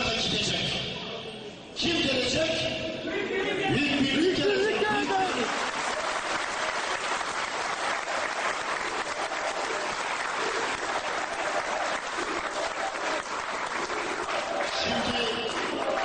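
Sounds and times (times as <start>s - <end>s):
audience applauding: 4.8s - 16.0s.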